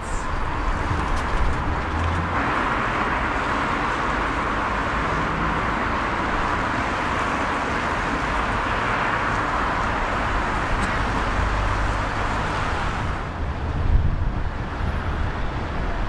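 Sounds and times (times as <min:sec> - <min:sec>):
road traffic hum: 0:00.0 - 0:16.0.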